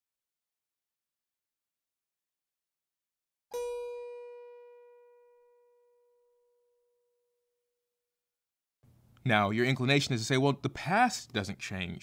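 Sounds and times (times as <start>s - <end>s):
single musical note ringing: 3.5s - 7.0s.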